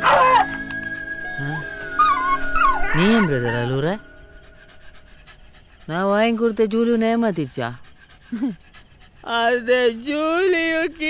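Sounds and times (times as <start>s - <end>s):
dog panting softly: 4.2s - 10.1s.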